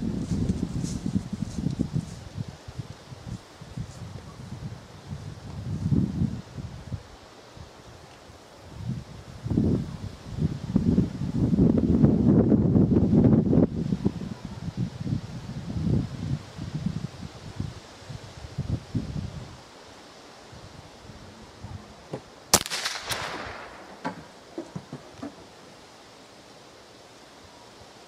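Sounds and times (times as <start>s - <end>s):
wind buffeting microphone: 0.0s - 7.1s, 8.7s - 19.6s
faint crack: 22.1s - 25.5s
rifle shot: 22.5s - 24.4s.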